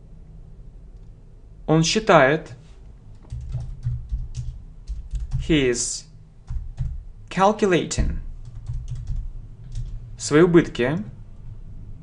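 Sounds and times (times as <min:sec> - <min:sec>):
computer keyboard typing: 0:03.2 - 0:05.6, 0:06.5 - 0:07.0, 0:08.4 - 0:10.0.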